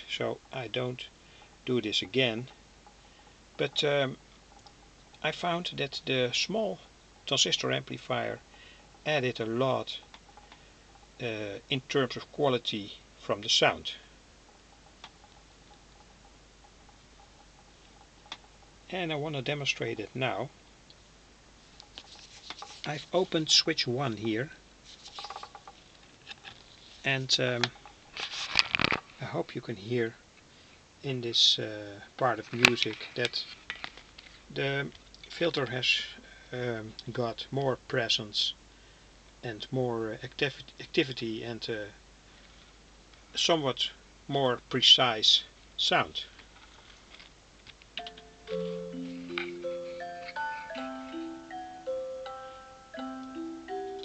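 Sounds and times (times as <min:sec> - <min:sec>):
low background hiss: 0:00.0 - 0:54.0
faint ticks: 0:02.4 - 0:05.2, 0:10.0 - 0:11.2, 0:14.4 - 0:18.8
light rustling and ticks: 0:21.6 - 0:29.3
slow filtered melody: 0:48.0 - 0:54.0.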